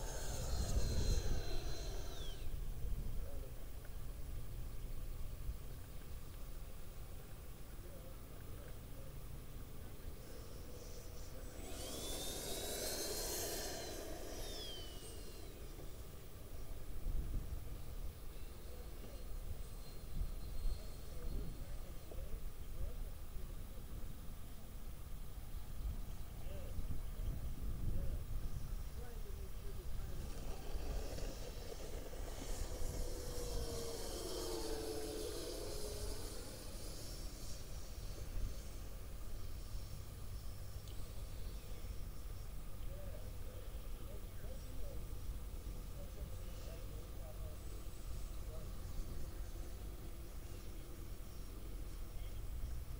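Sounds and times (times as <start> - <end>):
model jet ducted fans whining: 0.0 - 52.9.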